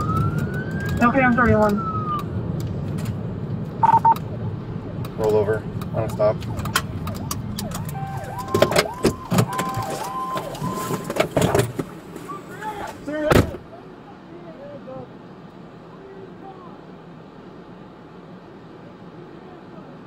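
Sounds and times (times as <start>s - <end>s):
two-tone police siren: 0.0s - 2.4s, 3.8s - 11.2s
low steady background noise: 0.0s - 20.0s
loud thump: 13.3s - 13.6s.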